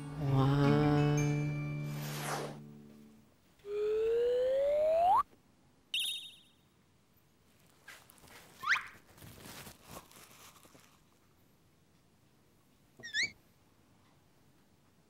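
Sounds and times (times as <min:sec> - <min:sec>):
quick rising chirp: 0:01.9 - 0:02.6, 0:03.7 - 0:05.2
rising whistle-like glide: 0:03.7 - 0:05.2.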